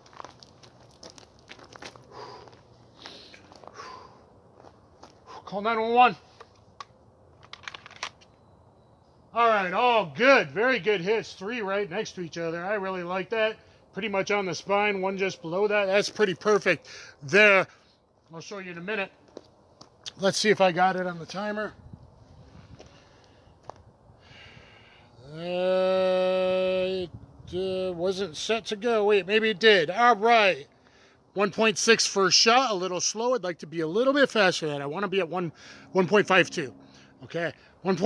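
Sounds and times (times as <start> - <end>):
handgun clicks and rattles: 6.4 - 8.3.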